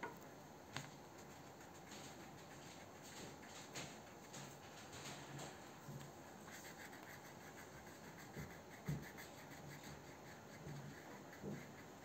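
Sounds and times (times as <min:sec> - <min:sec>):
crayon scratching on paper: 0:06.2 - 0:12.0.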